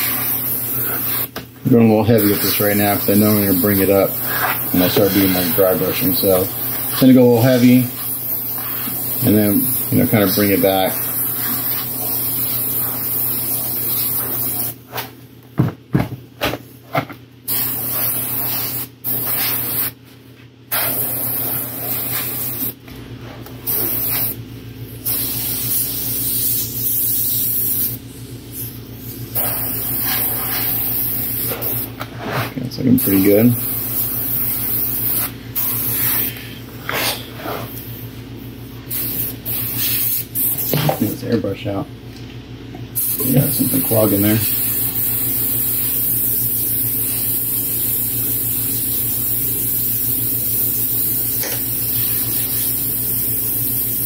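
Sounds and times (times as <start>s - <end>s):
airbrush spraying hiss: 0.0s - 1.4s, 2.0s - 14.8s, 17.5s - 20.0s, 20.7s - 22.8s, 23.7s - 37.8s, 38.8s - 40.8s, 43.0s - 54.0s
steady low hum: 0.0s - 54.0s.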